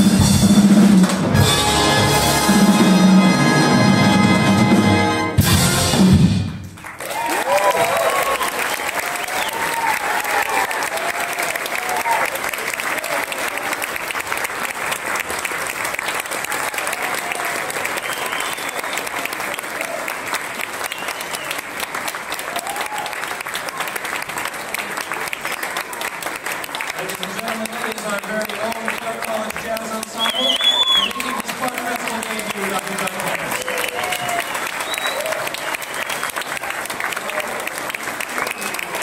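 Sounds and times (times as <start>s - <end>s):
audience applauding: 5.6s - 39.0s
whoops and shouts: 7.0s - 12.4s, 22.5s - 23.4s, 30.2s - 31.5s, 33.5s - 35.9s.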